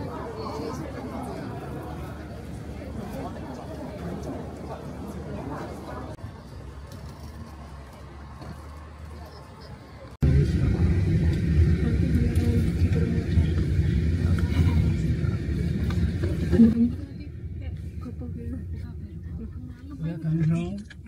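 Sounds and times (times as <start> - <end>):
indistinct talking: 0.0 - 21.0
loud low rumble: 10.2 - 20.2.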